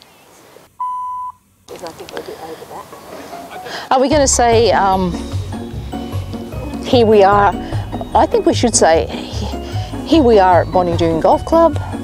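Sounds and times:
electronic beep: 0.8s - 1.4s
low voices outdoors: 1.7s - 11.0s.

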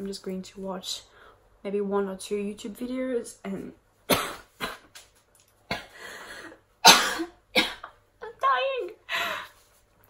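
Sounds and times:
woman coughing: 4.1s - 4.9s, 6.8s - 8.0s.

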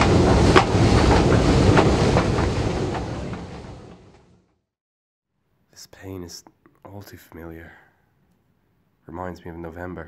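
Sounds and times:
underground train rumbling: 0.0s - 4.6s.

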